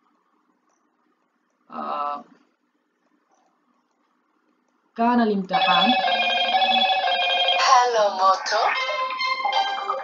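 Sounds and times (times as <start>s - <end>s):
electronic ringtone melody: 5.6s - 7.9s, 8.7s - 10.0s.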